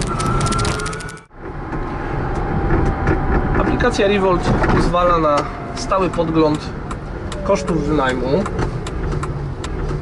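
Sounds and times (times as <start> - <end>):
road rumble in car cabin: 0.0 - 10.0.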